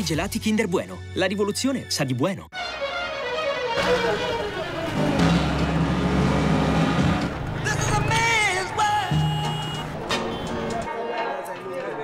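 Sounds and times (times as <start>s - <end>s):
vehicle engine humming: 3.2s - 10.9s.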